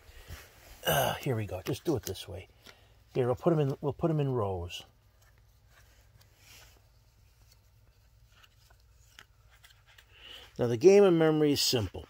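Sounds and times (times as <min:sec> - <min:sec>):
cardboard cards rustling: 0:01.4 - 0:12.0.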